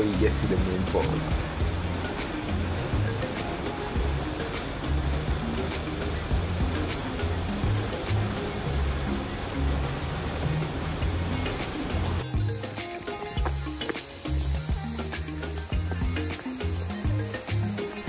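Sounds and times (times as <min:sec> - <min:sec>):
forest insects chirring: 0:00.0 - 0:08.8, 0:11.0 - 0:18.0
background music with bass: 0:00.0 - 0:18.0
water rushing over rocks: 0:00.0 - 0:18.0.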